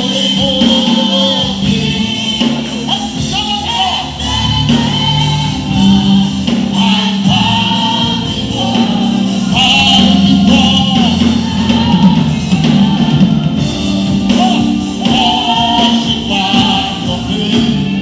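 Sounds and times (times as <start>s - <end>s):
choir singing: 0.0s - 18.0s
instrumental accompaniment: 0.0s - 18.0s
man singing lead: 0.0s - 18.0s.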